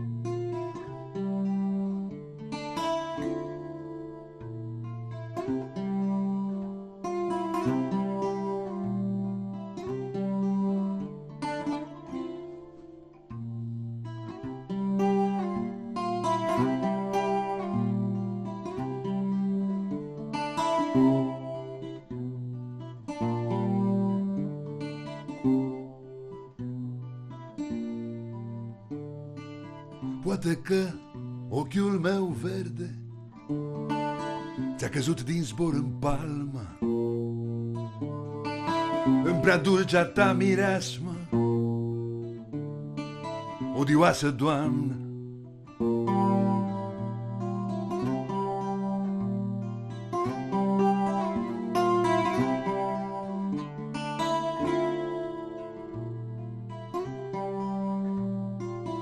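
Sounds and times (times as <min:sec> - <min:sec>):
acoustic guitar plucked chords: 0:00.0 - 0:59.0.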